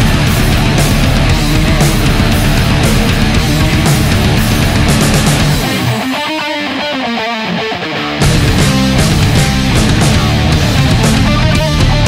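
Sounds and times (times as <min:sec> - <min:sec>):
electric guitar picking single notes: 0:00.0 - 0:12.0.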